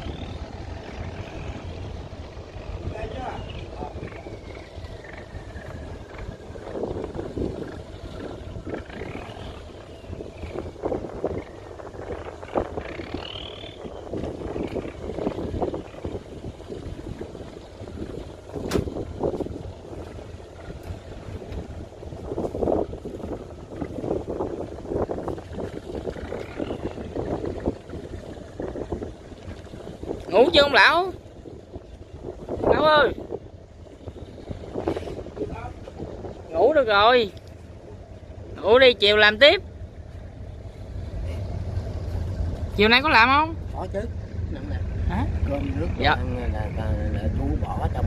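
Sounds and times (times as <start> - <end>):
diesel engine rumble: 0.0 - 48.0
wind on microphone: 0.0 - 48.0.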